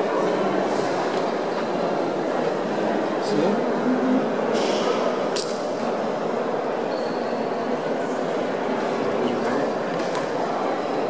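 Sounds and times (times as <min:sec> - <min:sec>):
echoing murmur of many voices: 0:00.0 - 0:11.0.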